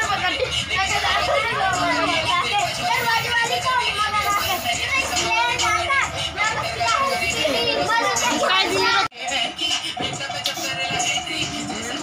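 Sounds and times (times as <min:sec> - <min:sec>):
children talking and calling out: 0:00.0 - 0:09.4.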